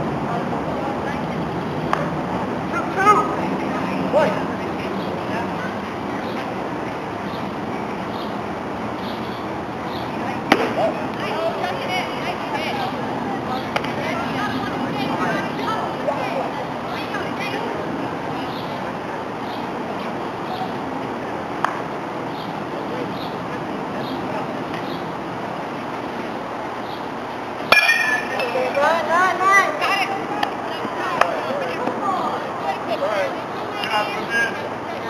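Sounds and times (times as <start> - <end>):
voices calling out: 0.0 - 35.0
baseball bat hitting ball: 10.5 - 10.8, 27.7 - 28.7
baseball smacking into mitt: 10.5 - 10.8.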